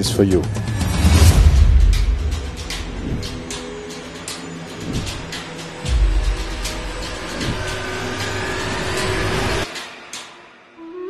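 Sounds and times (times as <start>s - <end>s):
low drone: 0.0s - 11.0s.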